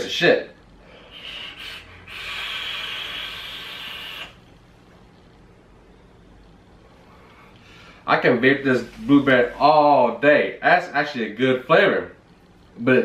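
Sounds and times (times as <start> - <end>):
person exhaling vapour: 0.8 - 4.4.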